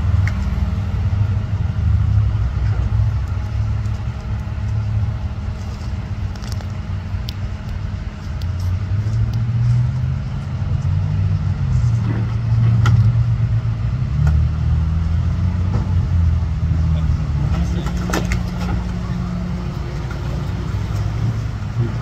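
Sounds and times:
truck engine running: 0:00.0 - 0:22.0.

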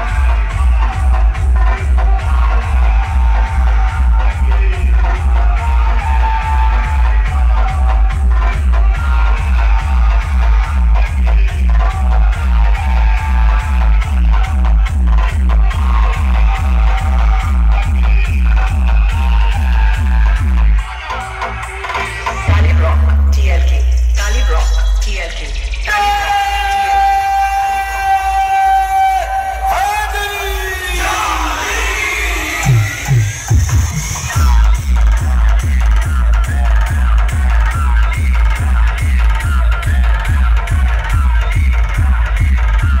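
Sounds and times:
loud dance music with pulsing bass: 0:00.0 - 0:43.0.

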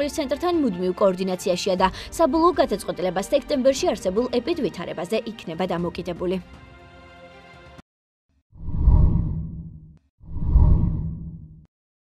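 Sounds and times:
deep whoosh: 0:08.6 - 0:11.7.

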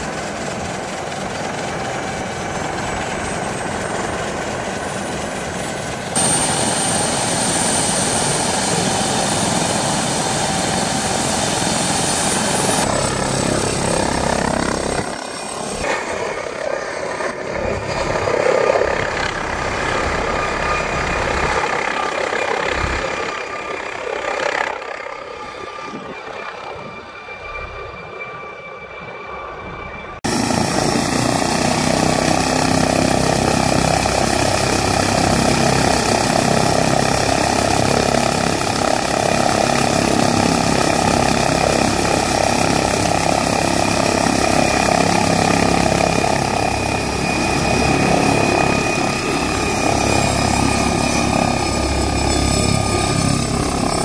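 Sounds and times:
helicopter high whine: 0:00.0 - 0:54.0
helicopter rotor rumble: 0:00.0 - 0:54.0.

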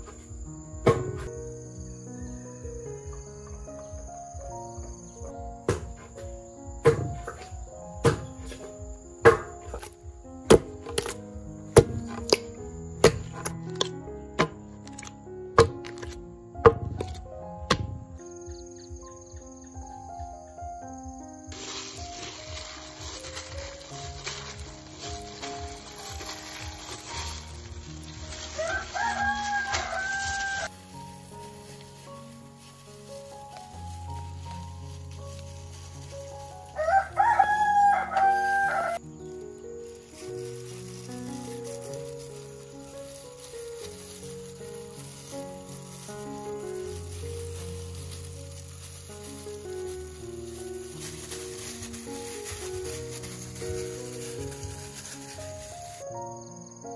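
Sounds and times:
background music with held notes: 0:00.0 - 0:56.9
rooster crowing: 0:28.4 - 0:30.7, 0:36.8 - 0:39.0.

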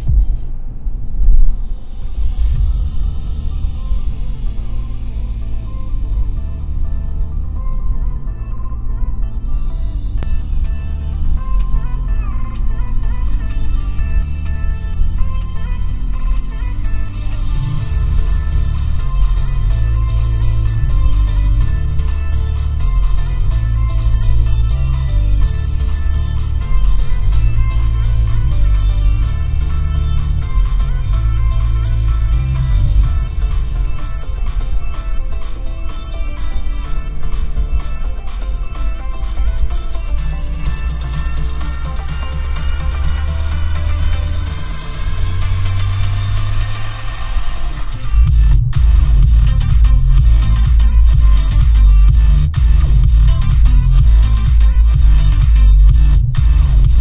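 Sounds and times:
electronic music on car stereo: 0:00.0 - 0:57.0
strong bass line: 0:00.0 - 0:57.0.

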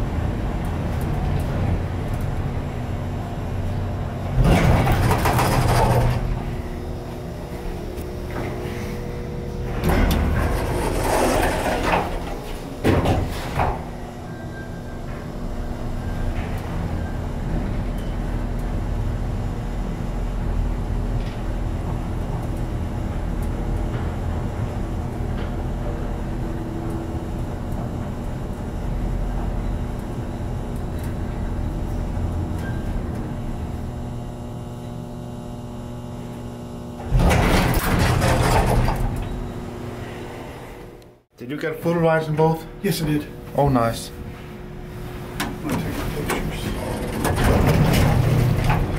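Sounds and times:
elevator doors sliding: 0:00.0 - 0:19.2, 0:37.0 - 0:41.0, 0:44.9 - 0:48.9
elevator machine humming: 0:00.0 - 0:48.9.

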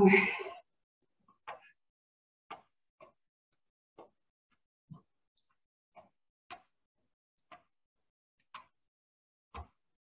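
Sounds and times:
exercise on mat: 0:00.4 - 0:01.9, 0:02.5 - 0:08.9.

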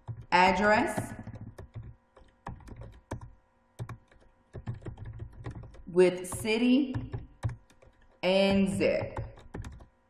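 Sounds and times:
keyboard typing: 0:00.0 - 0:09.9.

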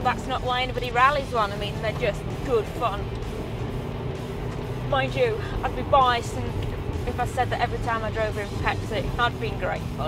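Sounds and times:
car engine droning: 0:00.0 - 0:10.0
road noise: 0:00.0 - 0:10.0.

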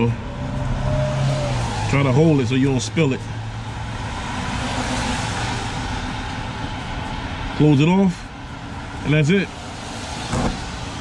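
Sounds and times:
road noise hiss: 0:00.0 - 0:11.0.

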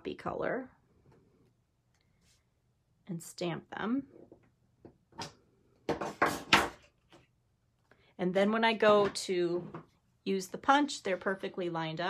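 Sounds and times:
knocks and scrapes on a table: 0:04.1 - 0:07.3.

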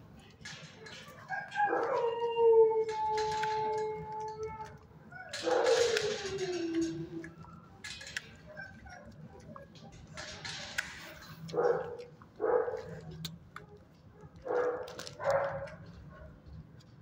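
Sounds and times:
dog howling: 0:01.2 - 0:07.8.

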